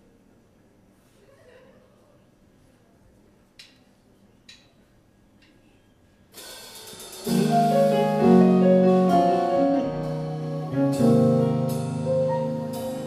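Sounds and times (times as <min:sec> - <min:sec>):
drums: 0:06.3 - 0:13.0
electric bass: 0:07.2 - 0:13.0
keyboard chords: 0:07.2 - 0:13.0.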